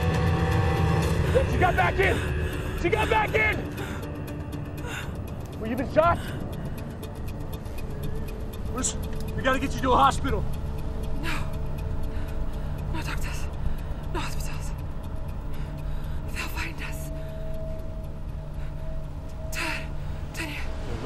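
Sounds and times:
car engine and road rumble: 0.0s - 21.0s
film score music: 0.0s - 21.0s.

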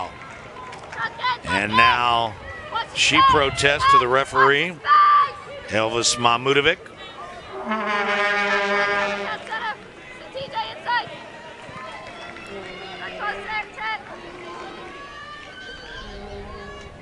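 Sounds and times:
quiet stadium ambience: 0.0s - 17.0s
players shouting calls: 1.0s - 17.0s.

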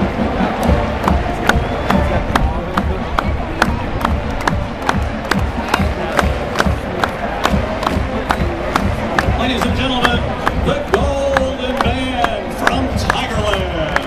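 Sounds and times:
marching band drums: 0.0s - 14.0s
stadium crowd cheering: 0.0s - 14.0s.

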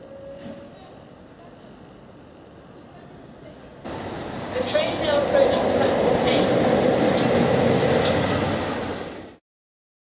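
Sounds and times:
diesel locomotive engine: 0.0s - 9.4s
wheels clicking on rails: 3.9s - 8.6s.

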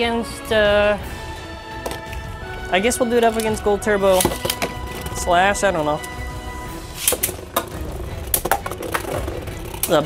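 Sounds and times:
background music: 0.0s - 10.0s
spinning tops clacking together: 7.0s - 10.0s.

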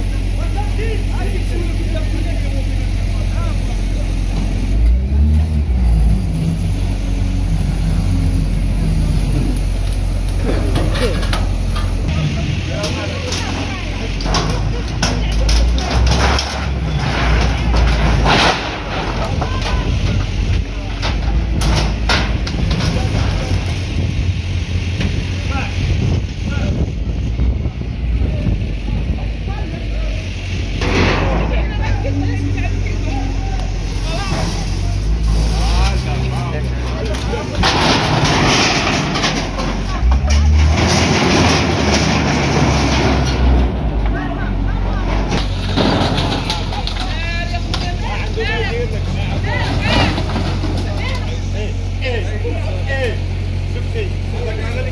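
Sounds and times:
diesel loader engine running: 0.0s - 54.9s
metal and wood crashing: 9.1s - 26.2s, 30.8s - 32.9s, 33.9s - 53.0s.

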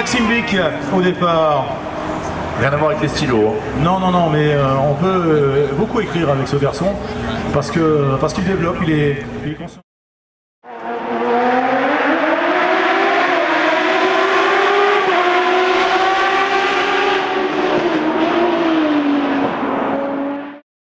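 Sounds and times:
engine-like revving tone: 10.6s - 20.6s.

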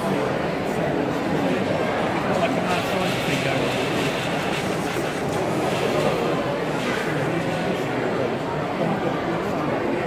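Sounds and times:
busy hall crowd noise: 0.0s - 10.0s.

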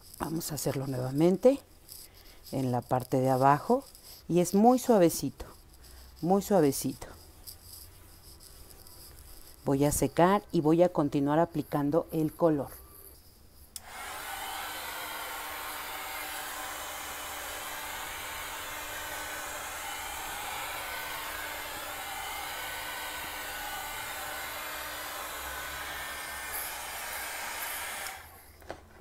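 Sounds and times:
hair dryer blowing: 13.8s - 28.5s.

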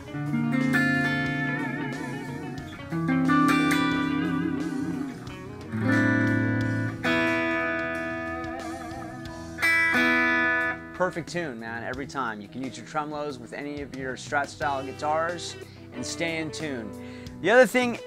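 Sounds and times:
electric guitar ringing chords: 0.0s - 11.0s.

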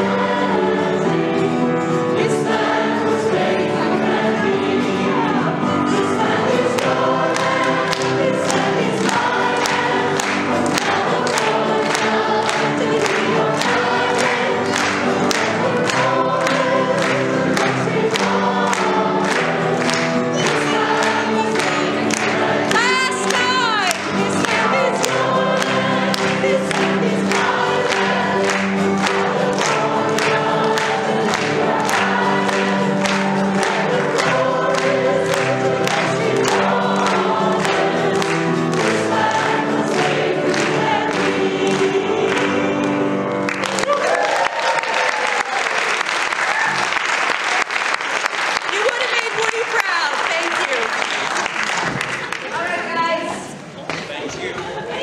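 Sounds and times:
choir singing: 0.0s - 44.1s
audience applause: 5.2s - 53.3s
hand-clapping in time: 6.3s - 52.6s
cheering: 43.5s - 52.6s.

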